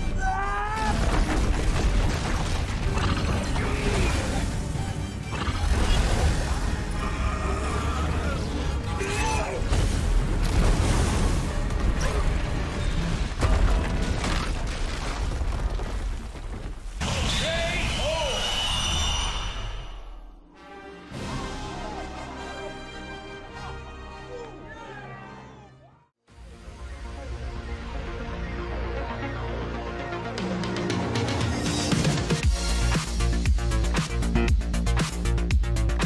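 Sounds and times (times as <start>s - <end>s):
dramatic film score: 0.0s - 36.0s.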